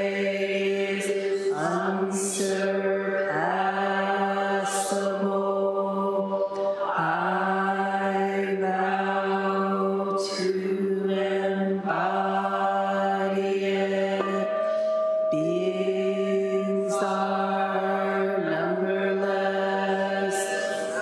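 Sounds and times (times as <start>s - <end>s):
voices chanting in unison: 0.0s - 21.0s.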